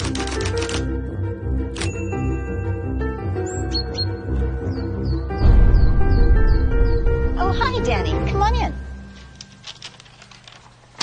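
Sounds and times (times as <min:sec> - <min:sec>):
background music with low notes: 0:00.0 - 0:10.6.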